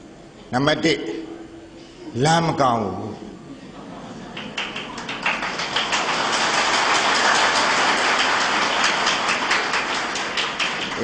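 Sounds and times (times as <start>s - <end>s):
audience applause: 4.3s - 11.0s.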